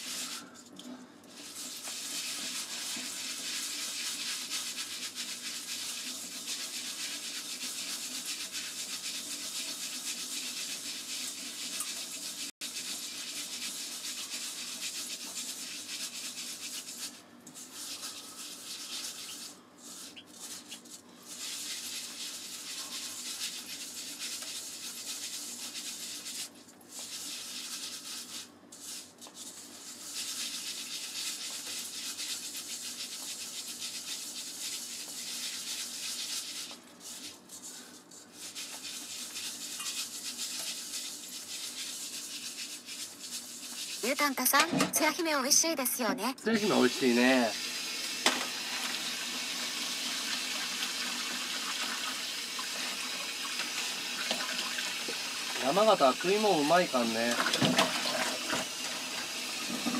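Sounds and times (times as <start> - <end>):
rice and water scrubbing hiss: 0.0 - 0.5, 1.3 - 20.6, 46.5 - 59.9.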